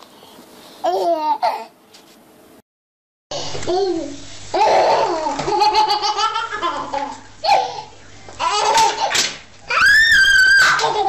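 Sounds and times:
baby laughing: 0:03.7 - 0:09.3, 0:10.6 - 0:11.0
baby high-pitched squeal: 0:09.7 - 0:11.0.

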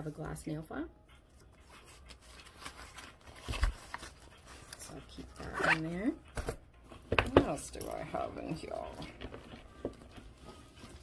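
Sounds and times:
items rustling in a handbag: 0:01.4 - 0:11.0.

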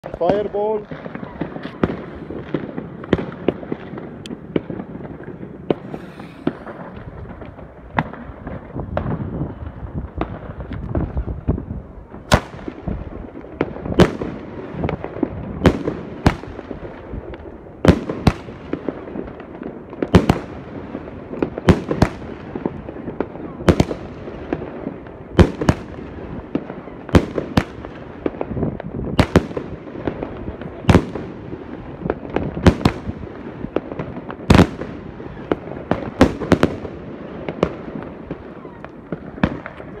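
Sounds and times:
firework bangs: 0:00.0 - 0:40.0
firework rushing noise: 0:00.0 - 0:40.0.

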